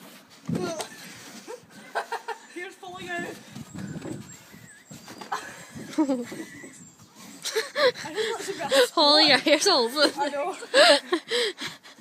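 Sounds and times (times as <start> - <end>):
people laughing and squealing: 3.6 - 9.2.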